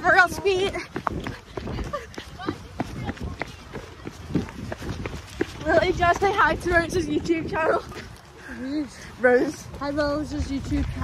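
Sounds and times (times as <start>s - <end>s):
faint group voices: 0.0s - 10.8s.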